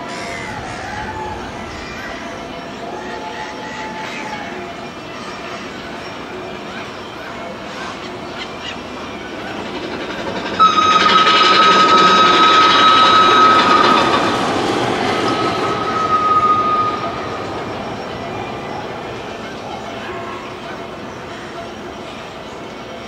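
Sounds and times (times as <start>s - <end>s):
high steady squeal: 0.0s - 5.0s, 7.2s - 21.1s
roller coaster rumbling and clattering: 0.0s - 23.0s.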